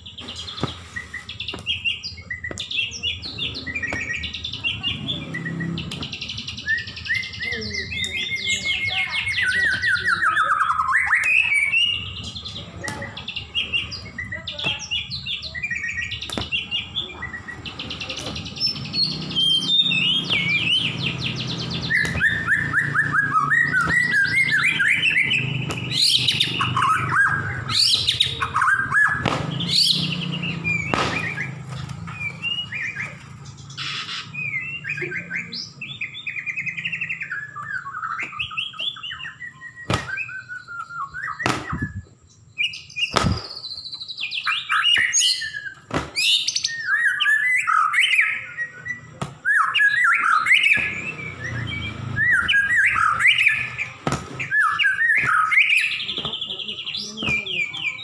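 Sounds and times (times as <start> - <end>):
bird singing whistles and trills: 0.0 - 58.0
sharp bird clicks: 5.8 - 7.2.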